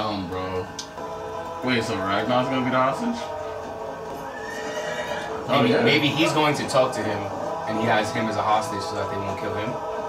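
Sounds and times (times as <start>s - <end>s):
sustained music score: 0.0s - 10.0s
hooves clopping: 0.9s - 7.8s
horse whinnying: 4.3s - 5.4s.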